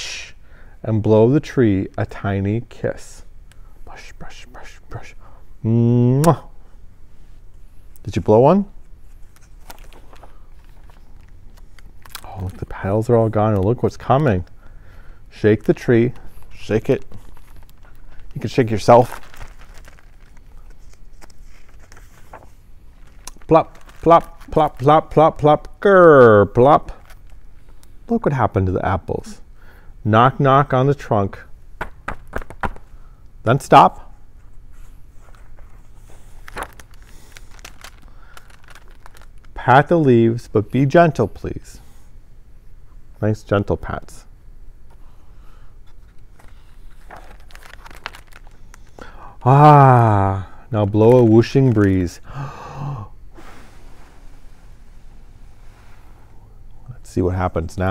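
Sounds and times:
page turning: 9.0 - 12.9, 16.2 - 25.0, 35.1 - 39.6, 45.9 - 49.0
paper rustle: 9.0 - 13.0, 15.6 - 25.1, 34.8 - 39.6, 45.8 - 49.1.

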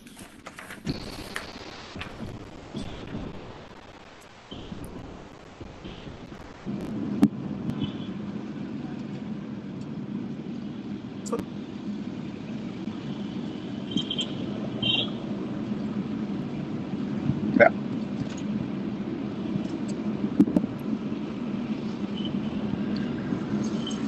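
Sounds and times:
low background rumble: 1.9 - 24.0.

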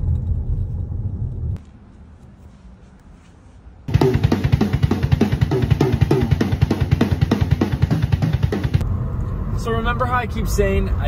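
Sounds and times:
drum kit played fast: 3.9 - 8.8.

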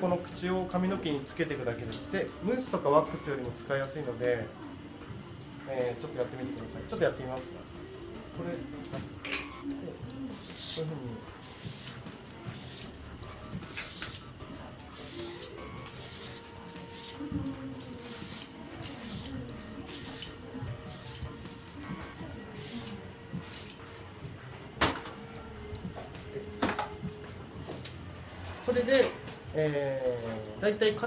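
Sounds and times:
aerosol spray hissing bursts: 11.4 - 13.0, 13.7 - 14.2, 14.9 - 17.2, 18.0 - 20.3, 20.9 - 21.3, 22.6 - 23.8.

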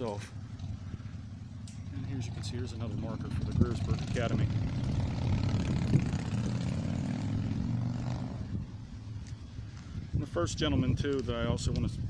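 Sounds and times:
passing engine drone: 0.3 - 9.6.

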